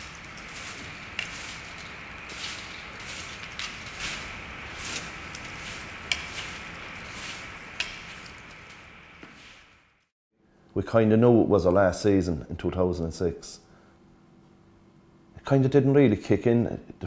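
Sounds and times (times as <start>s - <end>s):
footsteps: 0.0s - 9.8s
broom sweeping concrete floor: 0.0s - 10.1s.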